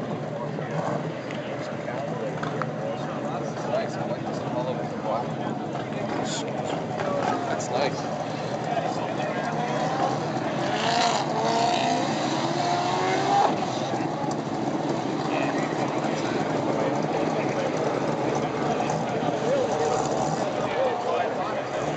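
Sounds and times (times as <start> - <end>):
people talking: 0.0 - 21.9
vehicle noise: 0.0 - 21.9.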